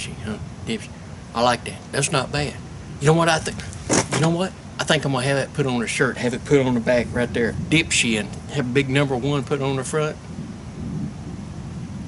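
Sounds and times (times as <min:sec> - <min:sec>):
faint hiss: 0:00.0 - 0:12.0
low uneven rumble: 0:00.0 - 0:12.0.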